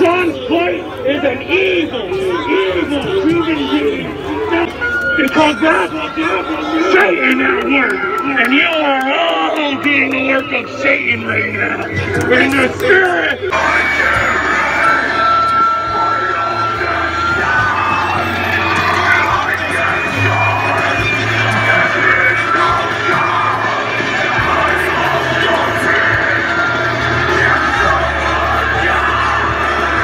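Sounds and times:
crowd singing and cheering: 0.0 - 30.0
steady bass line: 1.4 - 30.0
amplified worship music: 4.4 - 30.0
long held high note: 13.5 - 20.9.

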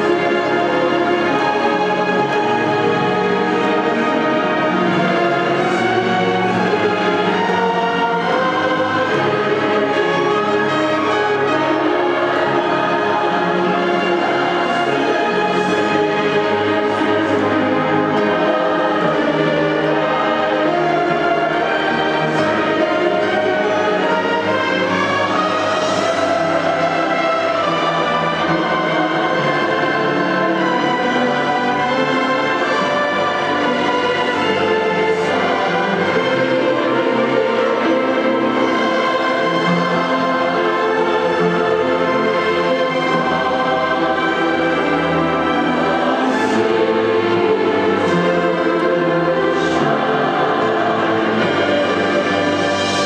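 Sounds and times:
choir singing with orchestra: 0.0 - 53.0.

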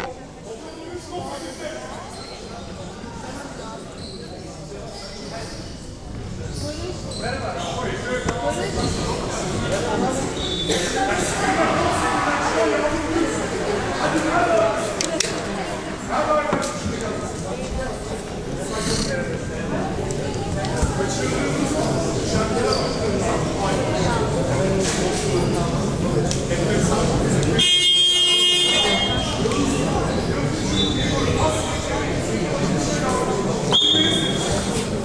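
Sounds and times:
voices echoing in a hall: 0.0 - 35.0
scoreboard horn buzzing: 27.6 - 29.4.

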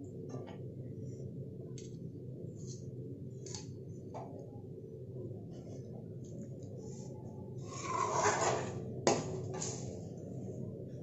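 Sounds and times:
steady low hum: 0.0 - 11.0
spoon scraping metal pan: 7.7 - 8.8.

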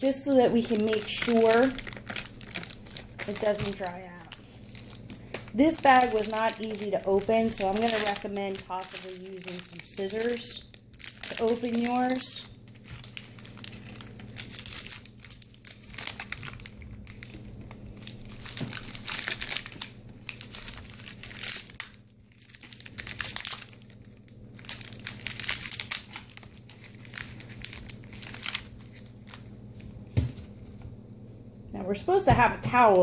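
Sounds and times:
foil bag crinkling: 0.0 - 30.8.

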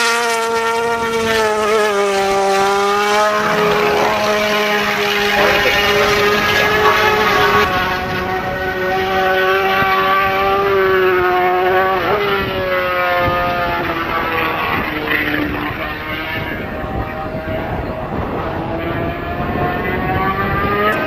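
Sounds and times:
motorcycle engine at high revs: 0.0 - 21.0.

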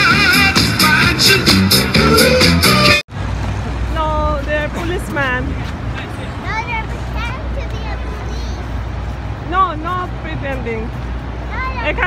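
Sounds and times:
passing cars rumble: 0.0 - 12.0.

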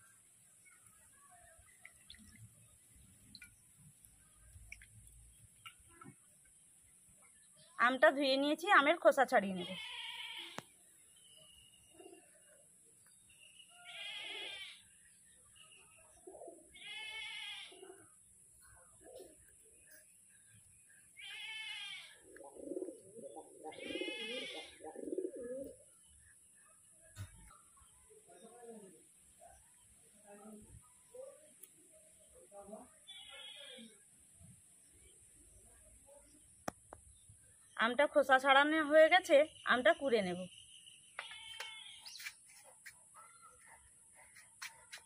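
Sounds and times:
goat bleating: 9.7 - 10.6, 16.8 - 17.7, 21.2 - 22.1, 23.7 - 24.8
faint animal call: 13.7 - 14.9, 16.4 - 18.1, 23.6 - 25.7, 33.0 - 34.0.

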